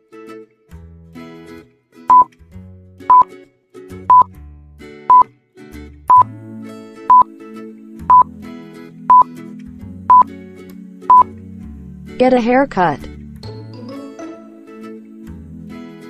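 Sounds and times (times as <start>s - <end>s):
soft background music: 5.0s - 16.0s.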